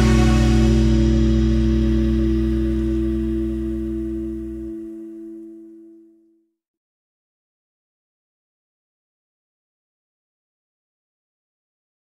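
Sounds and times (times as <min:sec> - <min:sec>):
rock band chord ringing: 0:00.0 - 0:05.8.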